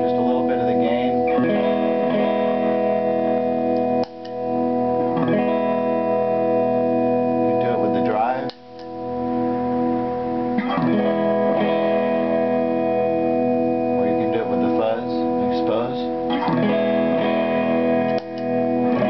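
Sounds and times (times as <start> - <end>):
electric guitar chords ringing: 0.0 - 19.0.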